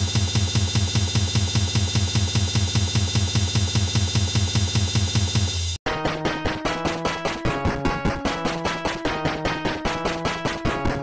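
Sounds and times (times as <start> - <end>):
fast drum beat: 0.0 - 11.0.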